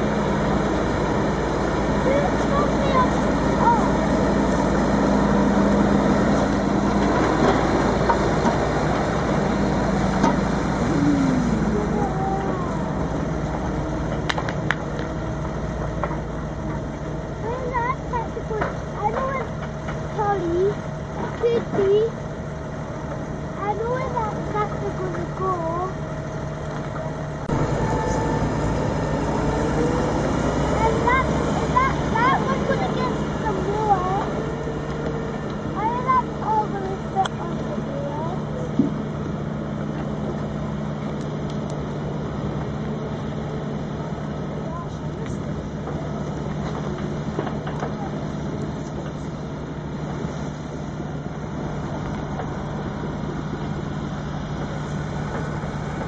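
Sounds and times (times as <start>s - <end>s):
indistinct voices: 0.0s - 15.4s, 26.9s - 39.0s
diesel machinery droning: 0.0s - 56.0s.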